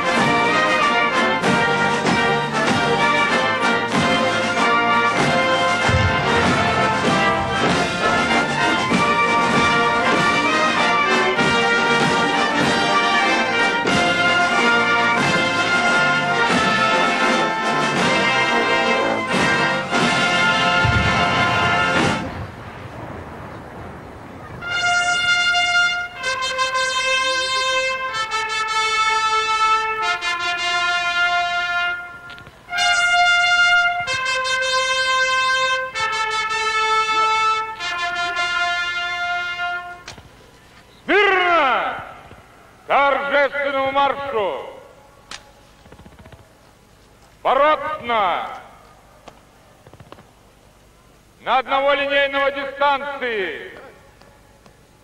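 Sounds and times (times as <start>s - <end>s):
trumpet fanfare: 0.0s - 22.5s, 24.5s - 40.2s
brass band playing: 0.0s - 22.8s, 24.6s - 40.2s.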